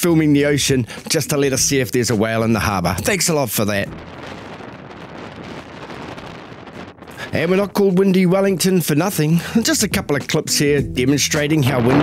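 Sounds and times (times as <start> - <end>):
wind blowing across microphone: 1.6 - 8.9.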